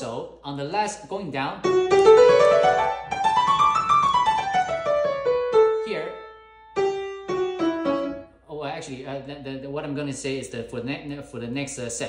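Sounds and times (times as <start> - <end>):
piano scale run: 1.6 - 8.4.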